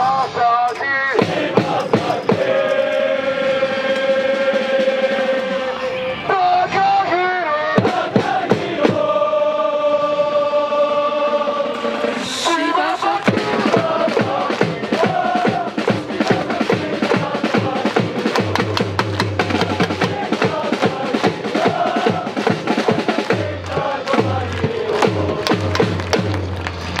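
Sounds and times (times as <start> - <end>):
crowd chanting: 0.8 - 27.0
bass drum beat: 1.2 - 2.6, 13.1 - 27.0.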